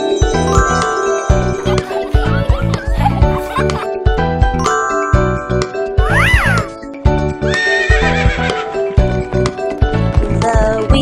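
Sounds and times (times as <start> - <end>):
children's cartoon music: 0.0 - 11.0.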